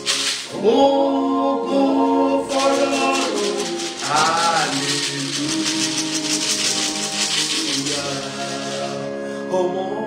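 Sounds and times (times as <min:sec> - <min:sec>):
beaded gourd rattle shaken: 0:00.0 - 0:00.6, 0:02.5 - 0:09.1.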